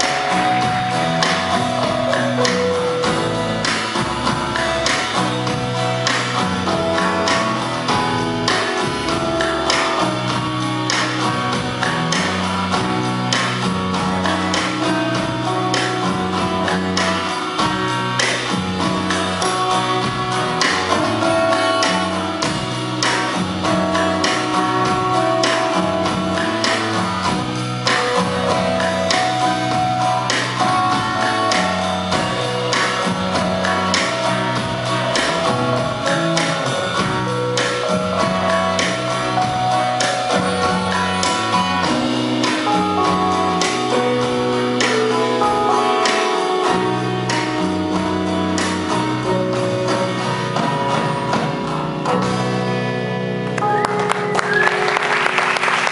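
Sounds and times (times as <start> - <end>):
drums with cymbal crashes: 0.0 - 52.4
electric bass line: 0.0 - 55.9
guitar and keyboard chords: 0.0 - 55.9
rock band playing: 0.0 - 55.9.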